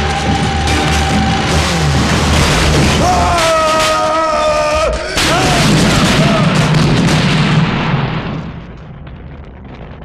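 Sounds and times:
heavy rumbling roar: 0.0s - 10.0s
loud explosion boom: 0.0s - 10.0s.

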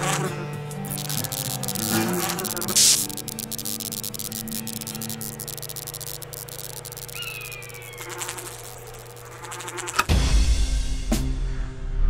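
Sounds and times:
crackling static: 0.0s - 10.1s
low buzzing drone: 0.0s - 10.2s
short falling whine: 1.0s - 9.6s.

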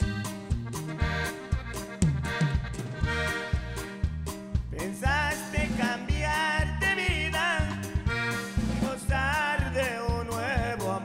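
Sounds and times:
accordion melody: 0.0s - 11.0s
drums steady beat: 0.0s - 11.0s
electric bass: 0.0s - 11.0s.

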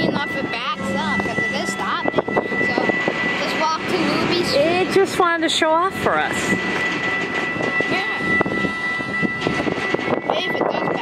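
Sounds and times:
thin steady high tone: 0.0s - 11.0s.

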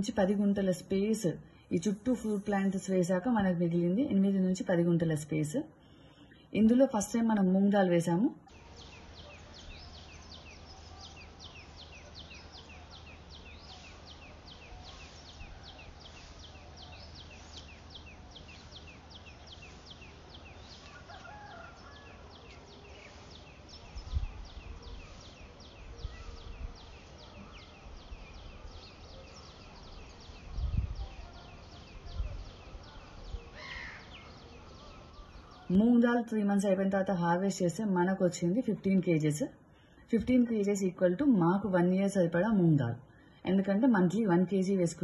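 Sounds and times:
faint outdoor hum: 0.0s - 45.0s.

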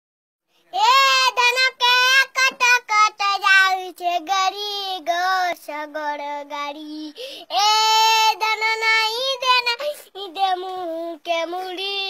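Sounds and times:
boy singing unaccompanied: 0.6s - 12.0s.

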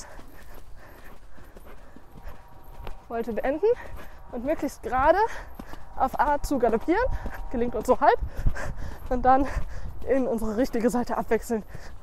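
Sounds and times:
hooves cantering on wet sand: 0.0s - 12.0s.

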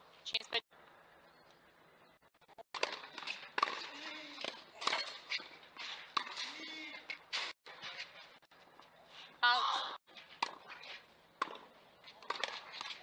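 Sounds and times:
racket hitting tennis ball: 2.7s - 8.2s, 10.2s - 13.0s.

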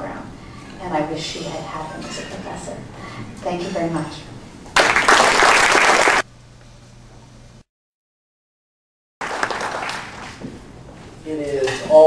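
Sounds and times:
audience applauding: 4.8s - 6.3s, 9.2s - 10.4s.

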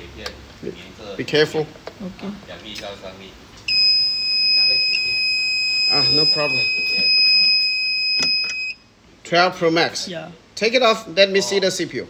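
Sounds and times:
continuous high-pitched electronic beep: 3.7s - 8.9s.

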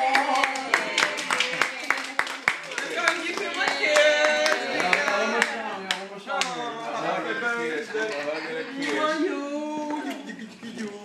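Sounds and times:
hand clapping: 0.0s - 6.6s.

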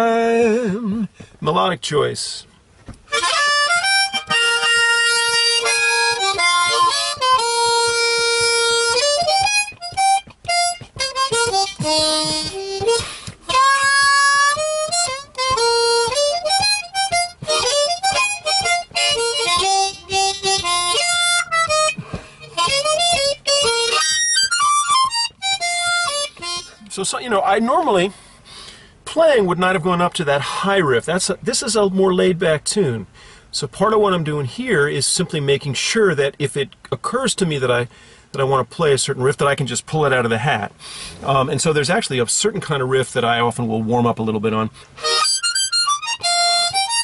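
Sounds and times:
blues harmonica solo: 3.0s - 29.0s, 44.7s - 47.0s.

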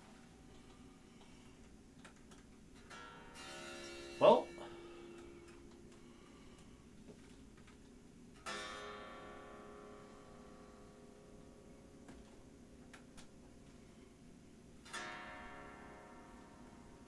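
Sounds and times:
guitar chord strummed: 2.9s - 5.8s, 8.4s - 11.9s.

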